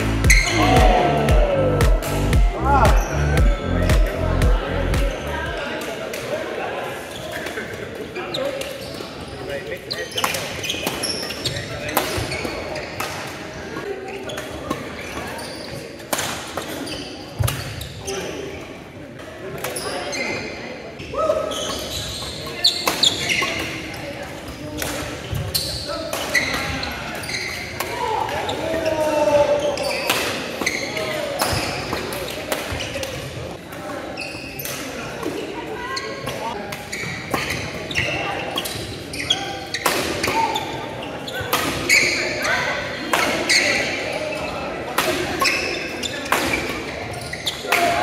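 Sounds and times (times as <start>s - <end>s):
shoes squeaking on hardwood floor: 0.0s - 0.8s, 8.2s - 13.0s, 21.5s - 23.6s, 25.2s - 27.8s, 29.6s - 33.0s, 36.9s - 42.6s
players calling out: 0.0s - 5.6s.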